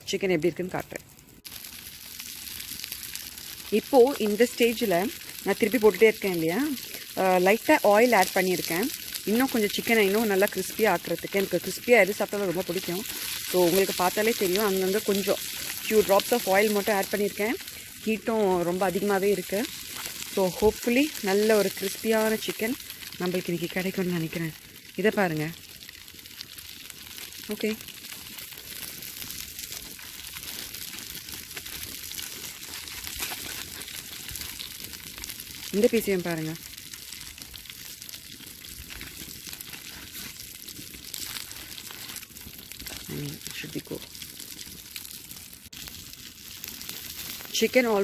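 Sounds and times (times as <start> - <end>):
person talking: 0.0 - 1.0, 3.7 - 19.7, 20.3 - 25.6, 27.5 - 27.8, 35.7 - 36.6, 43.1 - 44.1, 47.6 - 48.0
chicken sizzling on grill: 0.2 - 48.0.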